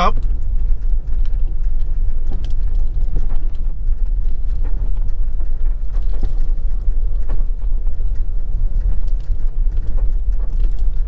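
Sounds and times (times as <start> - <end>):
vehicle rumbling over gravel: 0.0 - 11.0.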